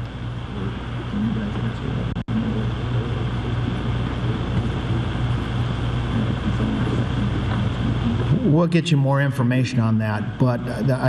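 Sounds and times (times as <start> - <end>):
room noise hum and hiss: 0.0 - 11.0.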